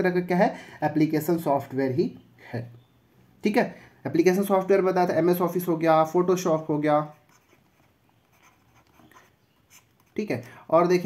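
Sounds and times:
stylus scratching on tablet: 6.8s - 10.5s.

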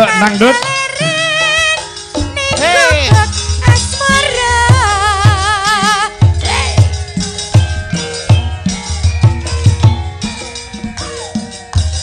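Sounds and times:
woman singing into a microphone: 0.0s - 7.1s
gamelan music: 0.0s - 12.0s
low drum beats: 2.2s - 12.0s.

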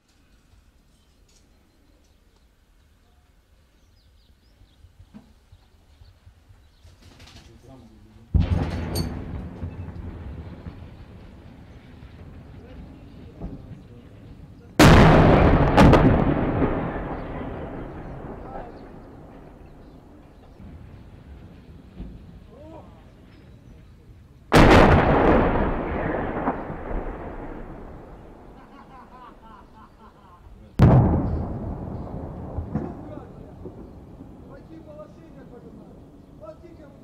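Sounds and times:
distant artillery explosions: 8.3s - 30.2s, 30.8s - 37.0s.

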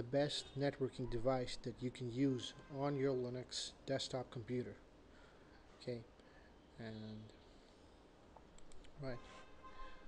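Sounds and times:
faint computer mouse clicks: 8.4s - 9.0s.

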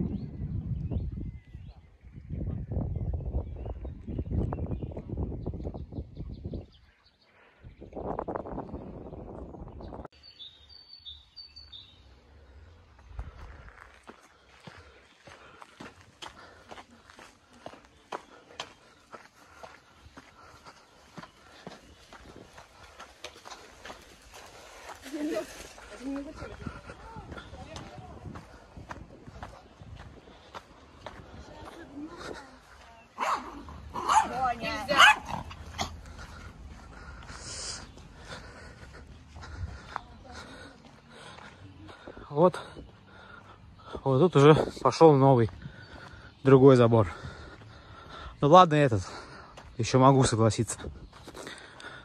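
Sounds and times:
small birds chirping: 0.0s - 52.0s
small dog barking and yelping: 33.2s - 35.9s.

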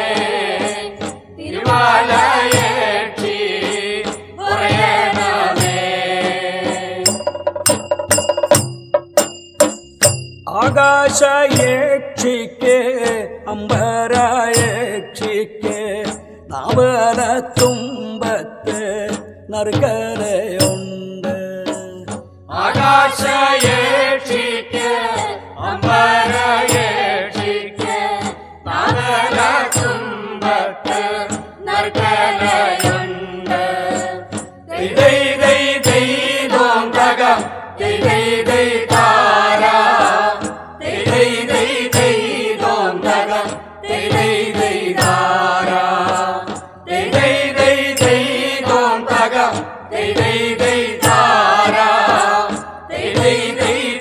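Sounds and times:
folk singing: 0.0s - 7.3s, 10.5s - 54.0s
instrumental accompaniment: 0.0s - 54.0s
steady percussion beat: 0.0s - 54.0s.

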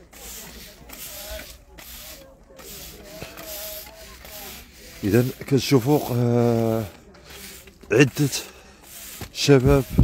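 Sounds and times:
broom sweeping pavement: 0.0s - 10.0s.

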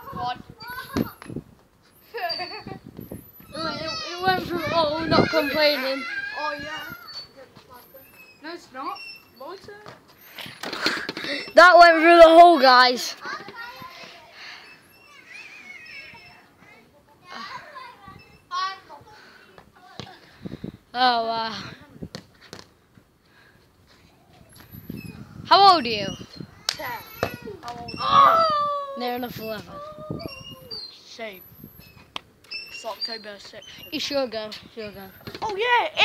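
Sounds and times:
children calling out: 3.4s - 7.3s, 11.3s - 19.4s, 26.5s - 30.9s
boy shouting: 3.5s - 6.9s, 26.8s - 30.8s.

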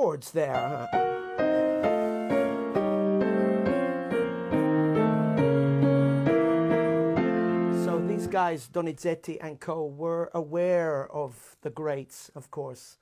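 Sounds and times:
grand piano chords: 0.5s - 8.6s.

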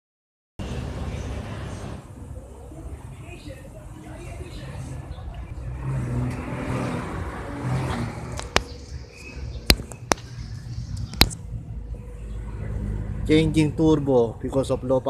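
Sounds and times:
low rumbling background noise: 0.6s - 15.0s
sharp clicks: 9.6s - 11.4s.

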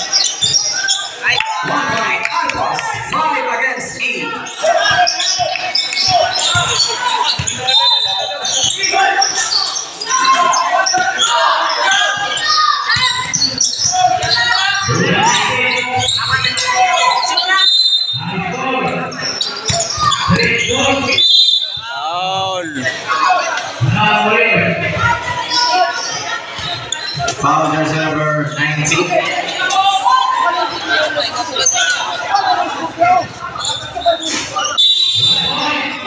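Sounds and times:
people talking and shouting: 0.0s - 36.0s.

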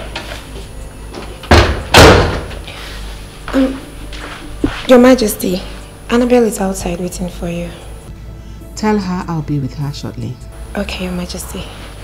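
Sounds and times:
door slamming: 1.5s - 2.6s.

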